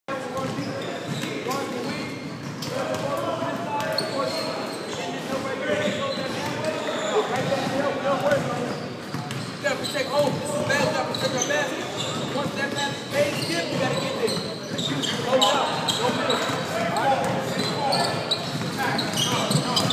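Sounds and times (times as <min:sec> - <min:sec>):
players talking and calling out: 0:00.1 - 0:19.9
basketballs bouncing on hardwood: 0:00.3 - 0:04.2, 0:07.4 - 0:19.9.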